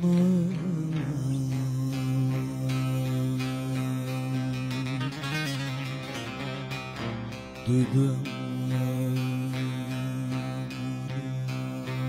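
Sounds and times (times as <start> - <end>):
person singing: 0.0 - 7.0, 7.6 - 12.0
long-necked lute strumming: 0.0 - 12.0.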